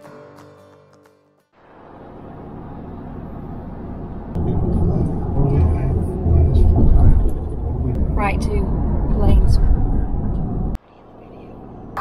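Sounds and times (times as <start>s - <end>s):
vehicle cabin road rumble: 1.6s - 12.0s.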